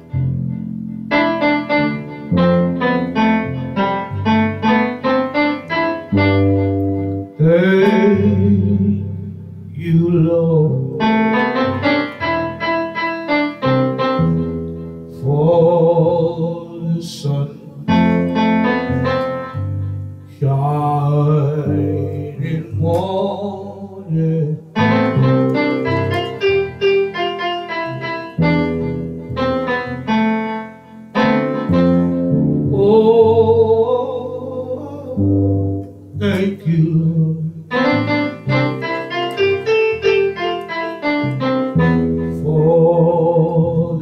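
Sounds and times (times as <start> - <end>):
electronic keyboards playing: 0.0 - 9.8, 10.6 - 16.5, 17.8 - 23.5, 24.6 - 43.8.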